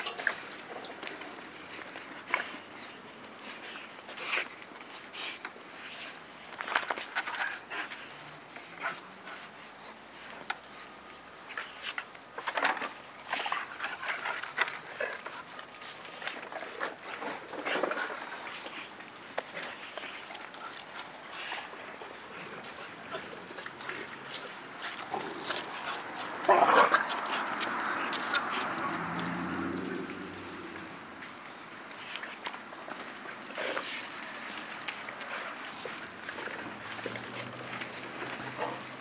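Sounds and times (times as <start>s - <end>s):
dogs' claws clicking and scuffling: 0.0s - 39.0s.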